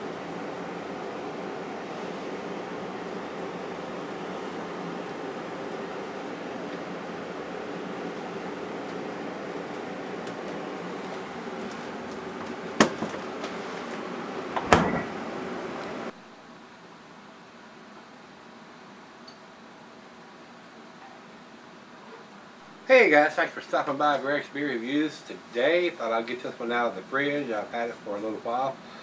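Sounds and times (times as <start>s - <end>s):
refrigerator humming: 0.0s - 29.0s.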